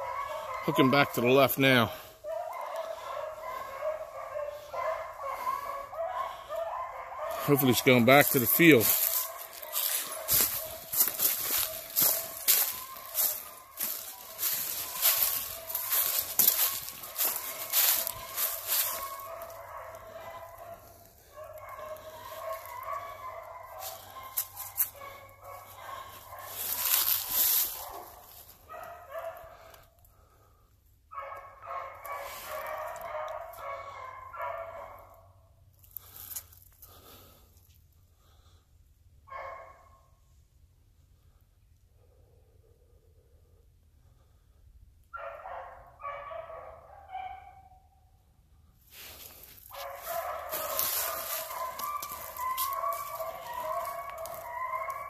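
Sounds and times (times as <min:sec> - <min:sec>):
hounds baying: 0:00.0 - 0:37.5, 0:39.2 - 0:40.4, 0:42.0 - 0:55.0.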